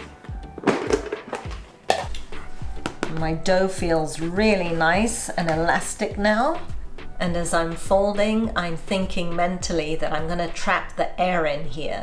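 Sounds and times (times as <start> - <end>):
background music with low beat: 0.0 - 10.8
plastic lid clacking: 0.6 - 3.2.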